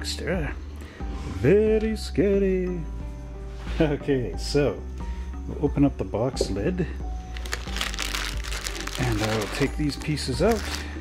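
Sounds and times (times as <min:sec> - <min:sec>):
background music: 0:00.0 - 0:11.0
plastic bag crinkling: 0:07.3 - 0:11.0.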